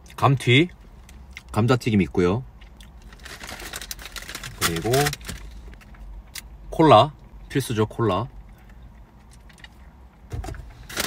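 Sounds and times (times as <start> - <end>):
low steady car cabin hum: 0.0 - 11.0.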